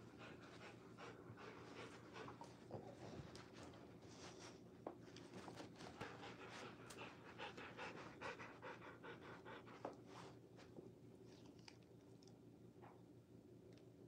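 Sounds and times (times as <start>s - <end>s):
dog panting: 0.0s - 4.5s, 5.9s - 10.4s.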